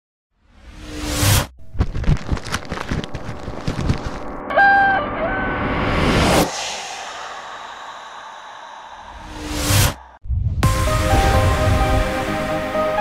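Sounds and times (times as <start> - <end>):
rising whoosh: 4.2 - 12.4
rooster crow: 4.5 - 5.7.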